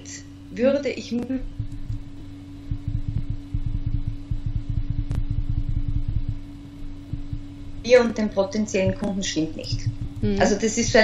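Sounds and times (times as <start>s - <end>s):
steady electrical hum: 0.0s - 11.0s
rumble of rapid soft thumps: 0.6s - 11.0s.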